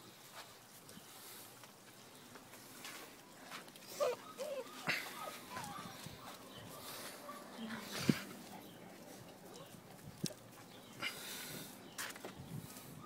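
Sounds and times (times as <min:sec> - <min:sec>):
puppies moving about: 0:00.6 - 0:13.0
puppy squeaky whimpers: 0:04.0 - 0:05.9.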